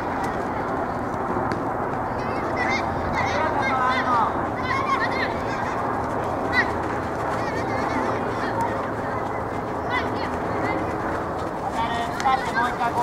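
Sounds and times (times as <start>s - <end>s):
children shouting: 0.0s - 1.1s, 2.0s - 13.0s
hubbub of voices: 0.0s - 13.0s.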